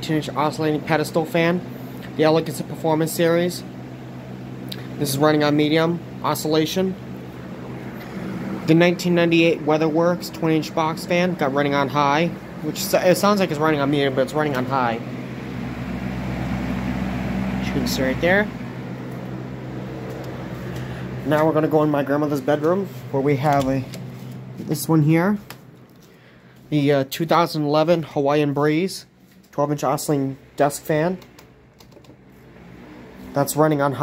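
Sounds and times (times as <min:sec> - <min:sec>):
box fan whirring: 0:00.0 - 0:34.0.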